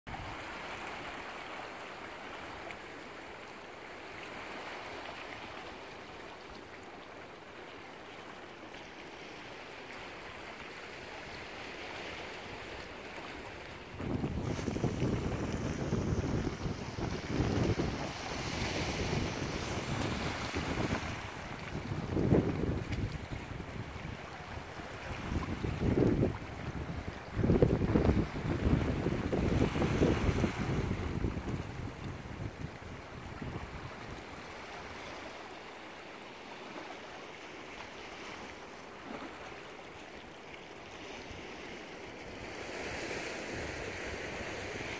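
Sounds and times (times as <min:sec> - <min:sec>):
waves lapping over rocks: 0:00.1 - 0:44.9
wind buffeting microphone: 0:13.9 - 0:34.4.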